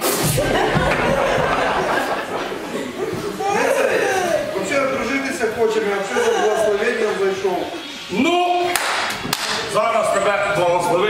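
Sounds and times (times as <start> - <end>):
men talking: 0.5 - 11.0
sharp smacks: 8.7 - 9.6.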